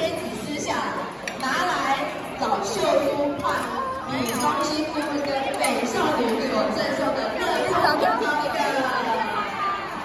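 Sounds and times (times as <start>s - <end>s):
hubbub of overlapping voices: 0.0s - 10.0s.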